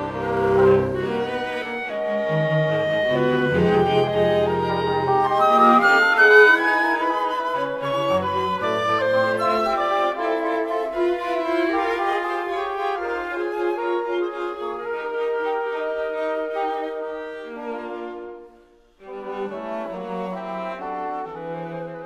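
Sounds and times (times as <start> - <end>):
chamber ensemble long held notes: 0.0 - 18.2.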